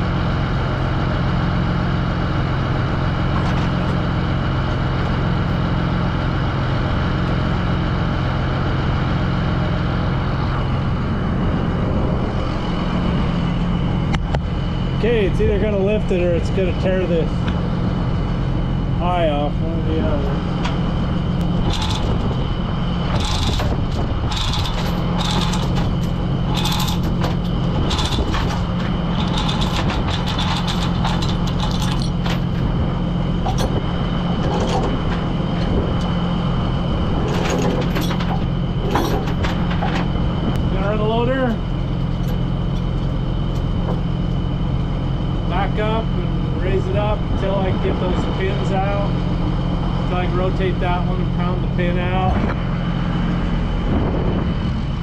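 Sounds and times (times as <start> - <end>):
diesel engine idling: 0.0 - 55.0
steel chain clinking and rattling: 21.6 - 22.3, 23.1 - 32.6.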